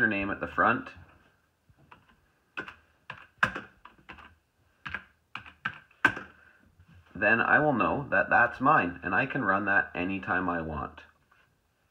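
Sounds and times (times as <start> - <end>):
computer keyboard typing: 1.9 - 6.4.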